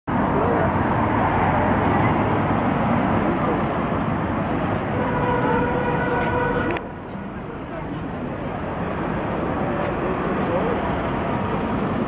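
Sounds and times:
traffic noise: 0.1 - 12.0
crowd voices: 0.2 - 12.0.

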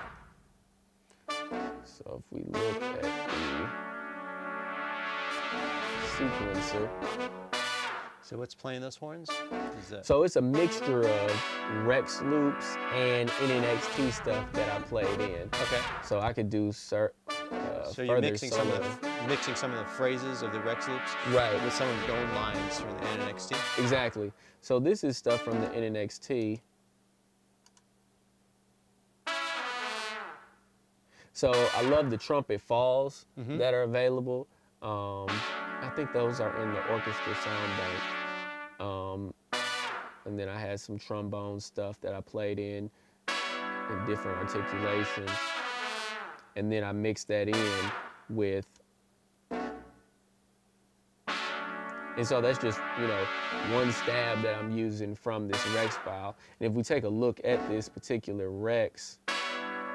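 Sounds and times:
funk brass section playing: 0.0 - 0.3, 1.3 - 8.3, 9.2 - 16.4, 17.2 - 24.4, 25.0 - 26.0, 29.3 - 30.4, 31.4 - 32.3, 35.1 - 40.6, 43.3 - 46.4, 47.4 - 48.6, 49.5 - 50.0, 51.3 - 56.5, 57.3 - 58.1, 59.2 - 59.9
sampled trumpet note with fall: 0.0 - 0.3, 1.1 - 8.5, 9.1 - 16.4, 17.2 - 26.0, 29.3 - 30.5, 31.4 - 32.4, 34.9 - 40.7, 43.3 - 48.6, 49.5 - 50.0, 51.3 - 56.5, 57.1 - 58.2, 59.2 - 59.9.

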